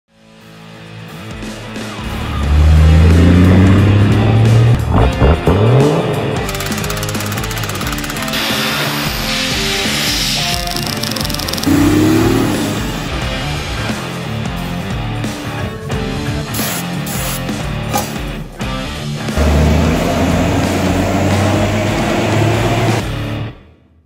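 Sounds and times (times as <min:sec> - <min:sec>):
guitar rock music: 0:00.1 - 0:23.7
engine revving: 0:01.9 - 0:14.1, 0:19.2 - 0:23.5.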